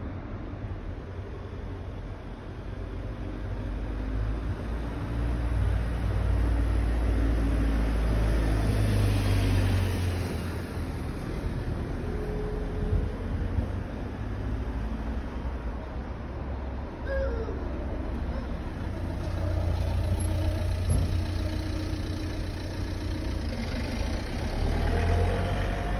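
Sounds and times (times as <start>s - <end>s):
vehicle passing: 5.0s - 15.2s, 17.8s - 25.9s.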